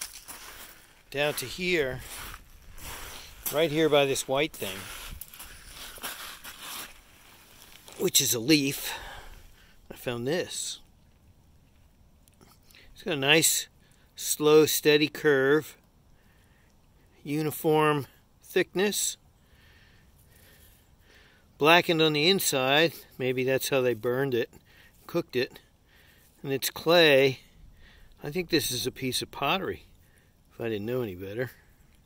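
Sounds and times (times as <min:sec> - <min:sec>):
footsteps on wet gravel in water: 0:00.0 - 0:09.3
faint outdoor background hiss: 0:00.0 - 0:32.0
man speaking: 0:01.1 - 0:02.2, 0:03.4 - 0:05.0, 0:07.9 - 0:09.3, 0:09.9 - 0:10.8, 0:13.0 - 0:15.7, 0:28.2 - 0:29.8, 0:30.6 - 0:31.6.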